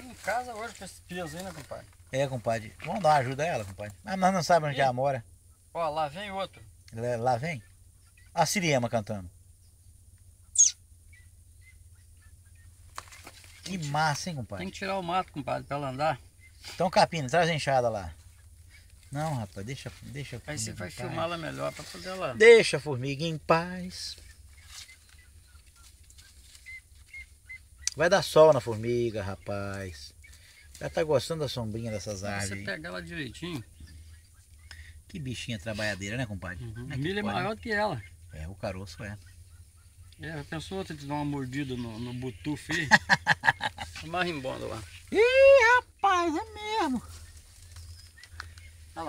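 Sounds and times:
low steady rumble: 0.0s - 49.0s
bird chirps: 5.3s - 8.8s, 9.4s - 49.0s.

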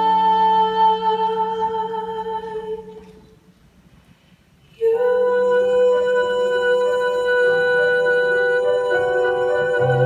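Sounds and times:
woman singing a long note: 4.8s - 10.0s.

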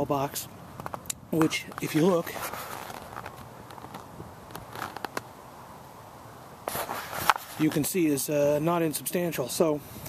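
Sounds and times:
wind blowing: 0.0s - 10.0s.

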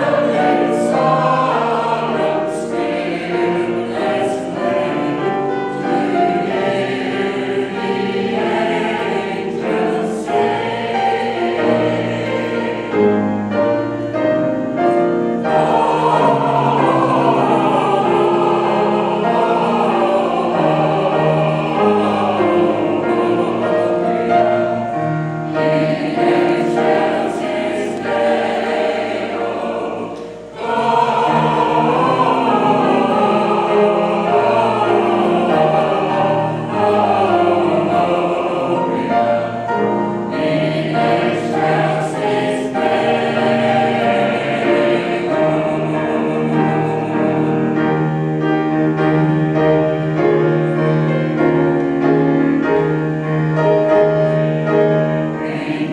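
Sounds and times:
mixed choir singing a carol: 0.0s - 55.9s.

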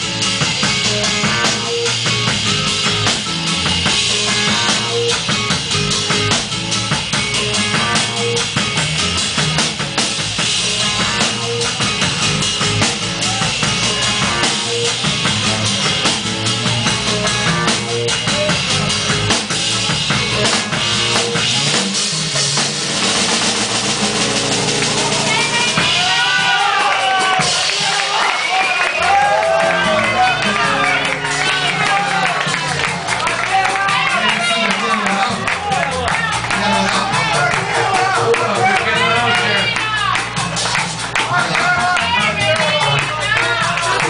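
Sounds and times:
drum kit played with sticks: 0.0s - 44.0s
live band instrumental groove: 0.0s - 44.0s.

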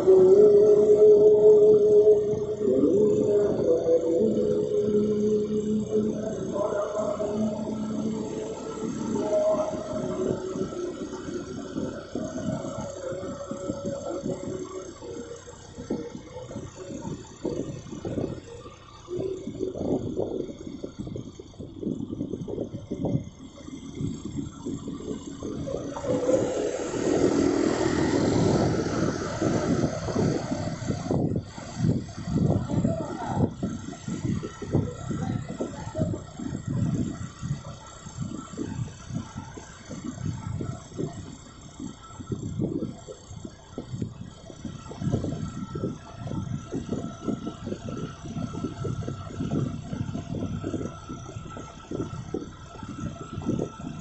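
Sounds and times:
road noise: 0.0s - 54.0s
rush of noise: 0.0s - 54.0s
wind buffeting microphone: 0.0s - 54.0s.

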